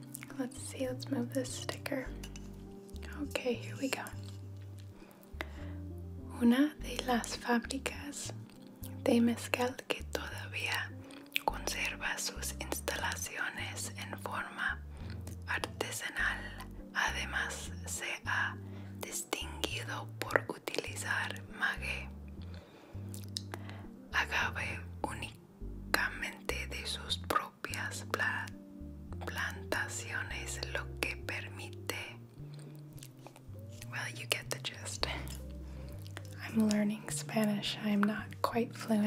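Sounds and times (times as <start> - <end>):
muffled background music: 0.0 - 39.0
woman reading aloud: 3.1 - 4.1, 6.3 - 8.4, 9.0 - 10.2, 36.4 - 39.0.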